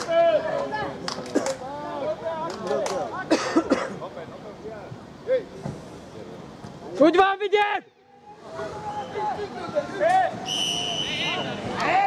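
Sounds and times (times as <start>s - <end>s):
referee whistle blast: 10.4s - 11.6s.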